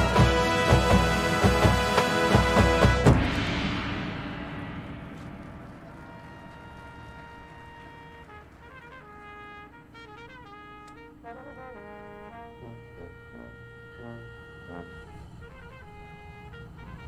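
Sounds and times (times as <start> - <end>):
brass sustained chords: 0.0 - 17.0
drum and bugle corps playing: 0.0 - 17.0.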